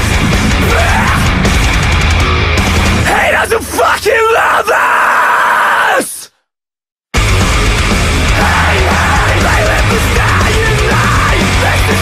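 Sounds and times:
heavy metal band: 0.0s - 6.2s, 7.2s - 12.0s
harsh screamed vocals: 0.3s - 1.7s, 3.0s - 6.4s, 8.2s - 12.0s.

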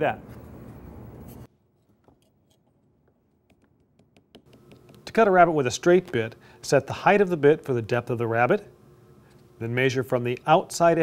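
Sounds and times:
shop room tone: 0.0s - 11.0s.

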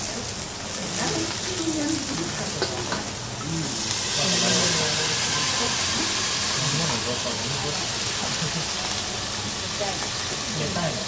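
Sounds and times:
food sizzling: 0.0s - 11.0s
steam hissing: 0.0s - 11.0s.

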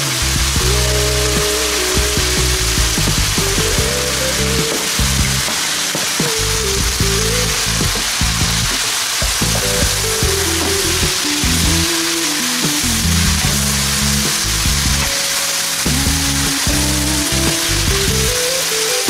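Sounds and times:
background music: 0.0s - 19.0s
food sizzling in oil: 0.1s - 19.0s.

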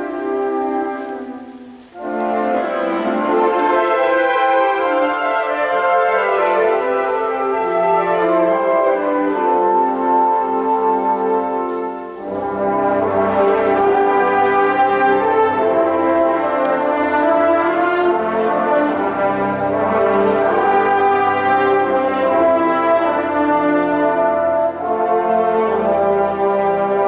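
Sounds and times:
marching band brass chords: 0.0s - 27.0s.

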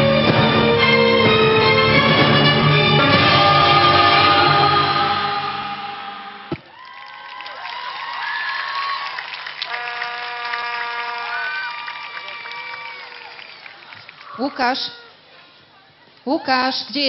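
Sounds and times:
audience cheering: 6.3s - 15.1s.

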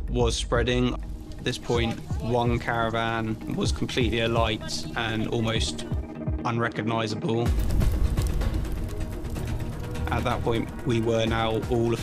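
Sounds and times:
background music: 0.0s - 12.0s
crackling clicks: 7.5s - 12.0s.

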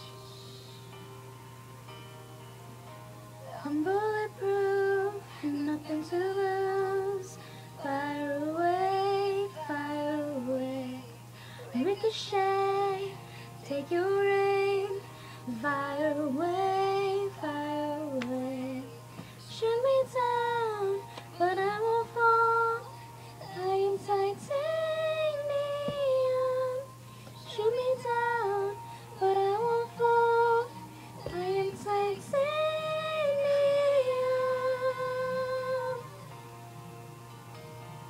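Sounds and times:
girls singing pop melody: 3.5s - 36.4s.

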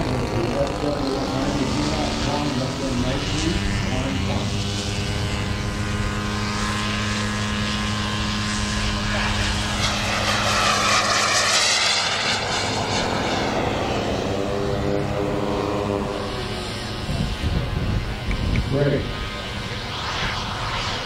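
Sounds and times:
jet whine: 0.0s - 21.0s
jet swoosh passing by: 1.1s - 21.0s.

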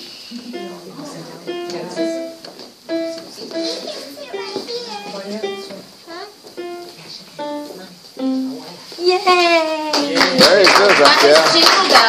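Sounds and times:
applause and cheering: 9.8s - 12.0s.

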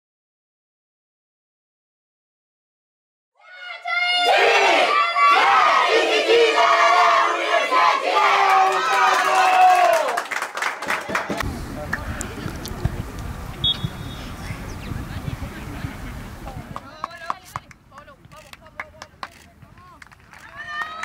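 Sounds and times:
women shouting and chanting: 3.4s - 5.8s
people clapping: 8.2s - 13.0s, 16.4s - 21.0s
low outdoor rumble: 11.4s - 21.0s.

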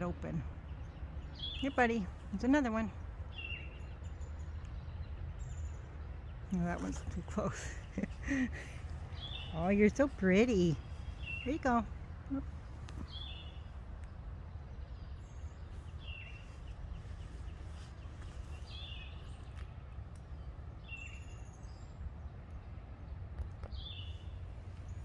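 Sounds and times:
low background rumble: 0.0s - 25.0s
bird calling: 6.6s - 21.9s.

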